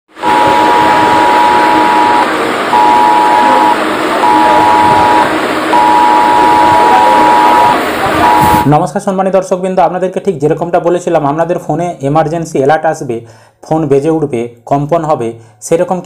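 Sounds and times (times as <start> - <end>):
steady noisy buzz: 0.1 - 8.8
smartphone emergency alert tones: 0.2 - 8.7.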